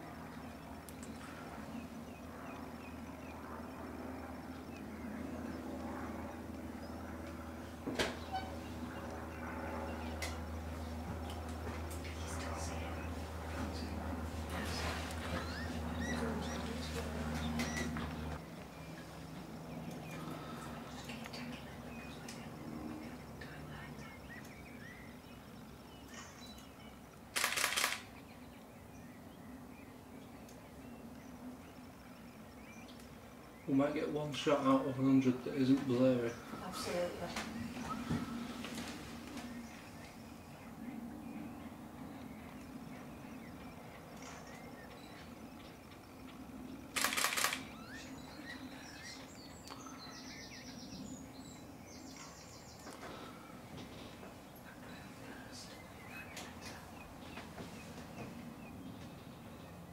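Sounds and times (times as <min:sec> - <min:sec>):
low steady hum: 0:00.0 - 0:59.9
small birds chirping: 0:00.0 - 0:59.9
camera shutter burst: 0:27.4 - 0:28.1, 0:47.0 - 0:47.9.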